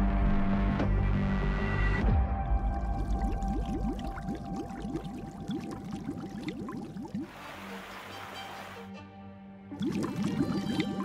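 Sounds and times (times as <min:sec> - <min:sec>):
underwater air bubbles: 0:02.6 - 0:07.4, 0:09.8 - 0:11.0.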